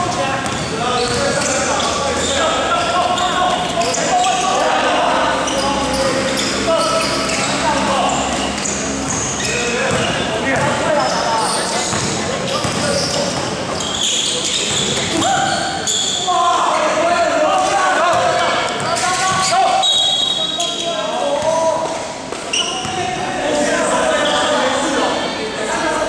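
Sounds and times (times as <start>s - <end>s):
people shouting and calling: 0.2s - 8.6s
basketball dribbling: 0.4s - 1.6s, 9.0s - 10.8s, 11.8s - 14.0s.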